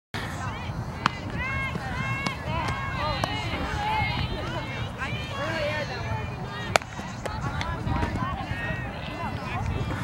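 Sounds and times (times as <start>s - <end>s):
players calling out: 0.2s - 10.0s.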